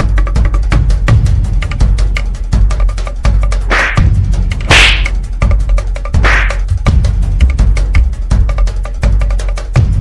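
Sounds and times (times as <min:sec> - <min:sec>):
music with fast drum beat: 0:00.0 - 0:10.0
whip-like swish: 0:03.7 - 0:04.1, 0:04.7 - 0:05.1, 0:06.2 - 0:06.6.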